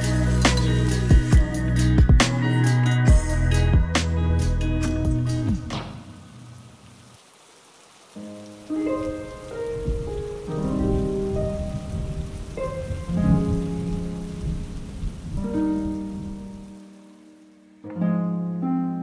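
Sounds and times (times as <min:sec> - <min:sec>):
rain falling: 0:00.0 - 0:03.2, 0:04.8 - 0:17.8
soft music with held notes: 0:00.0 - 0:05.8, 0:08.1 - 0:19.0.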